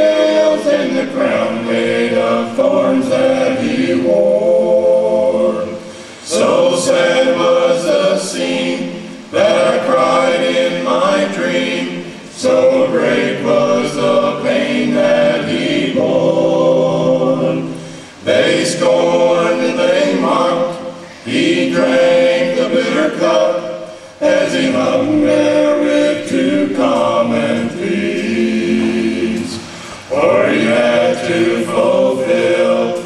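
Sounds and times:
male vocal group singing in harmony: 0.0 - 33.0.

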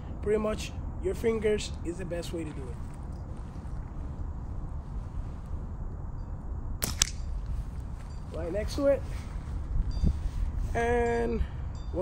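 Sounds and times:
low background rumble: 0.0 - 12.0
slingshot bands snapping: 6.8 - 7.3
steel ball striking: 6.8 - 7.4.

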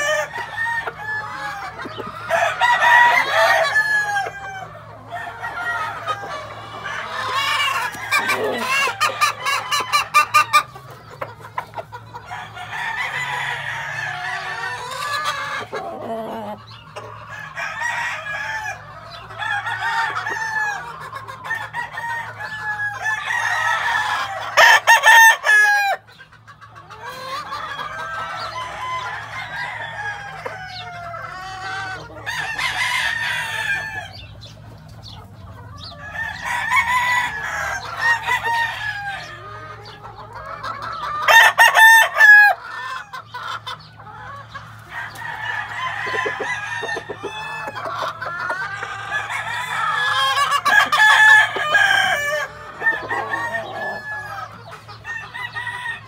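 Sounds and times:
rooster crowing: 0.0 - 10.6, 12.3 - 16.5, 21.5 - 26.0, 36.0 - 39.5, 41.2 - 42.7, 44.9 - 47.9, 48.5 - 56.0
roosters clucking and calling: 0.0 - 56.0.

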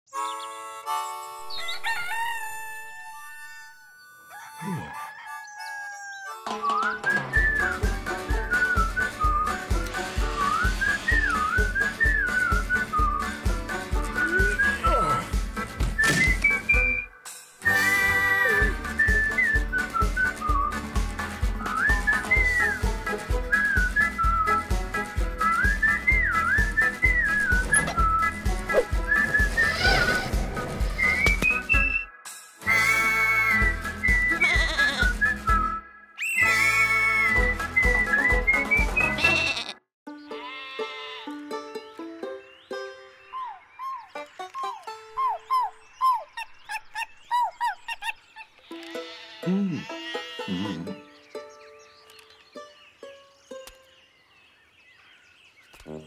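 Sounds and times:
whistled melody: 0.1 - 30.3, 30.9 - 39.2, 42.0 - 47.6
rooster crowing: 1.5 - 6.4
upbeat theme music: 6.3 - 35.8.

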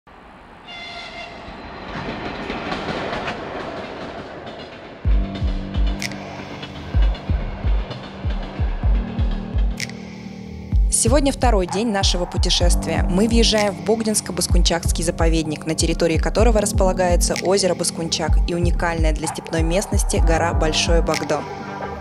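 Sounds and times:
freight train rumble: 0.1 - 22.0
train horn note: 0.6 - 1.6
music with heavy bass hits: 5.1 - 13.6.

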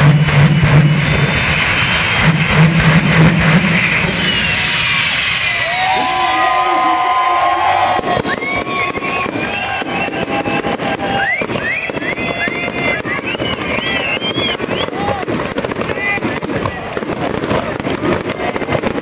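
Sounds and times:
engine running: 0.0 - 9.7
crowd voices: 0.3 - 19.0
long steady pitched tones: 0.4 - 10.2
hiss: 1.2 - 6.3
fire crackling and popping: 7.2 - 19.0.

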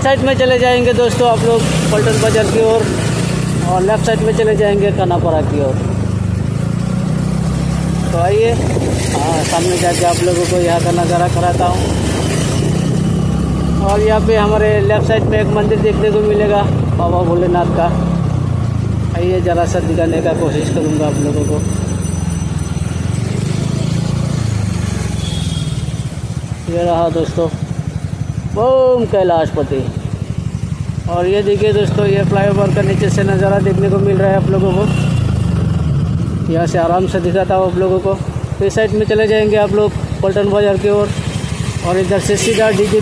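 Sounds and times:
road noise: 0.0 - 43.0
vehicle engine hum: 0.0 - 43.0.

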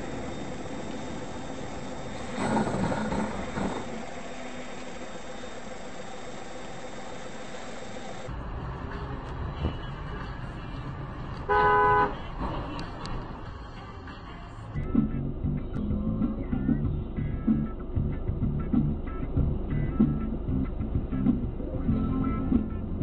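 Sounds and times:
vehicle road noise from inside: 0.0 - 23.0
car horn honk: 11.5 - 12.3.

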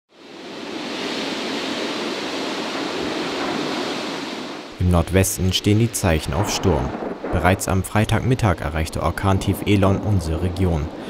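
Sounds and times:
storm wind through trees: 0.1 - 11.0.

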